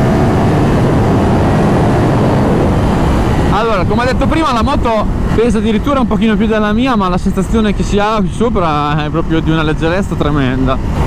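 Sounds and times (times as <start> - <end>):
motorcycle engine accelerating: 0.0 - 11.0
wind noise on microphone: 0.0 - 11.0.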